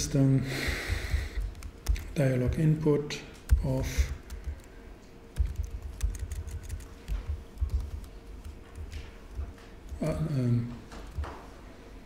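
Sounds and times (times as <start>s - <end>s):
keyboard key clicks: 1.5s - 2.2s.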